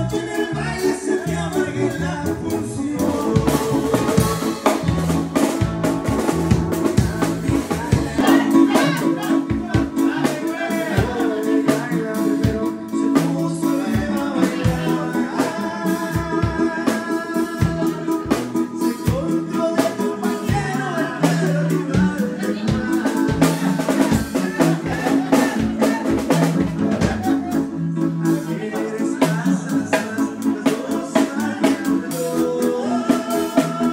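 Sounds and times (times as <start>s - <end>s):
band music: 0.0s - 33.9s
drum kit beat: 0.0s - 33.9s
singing: 6.8s - 33.9s.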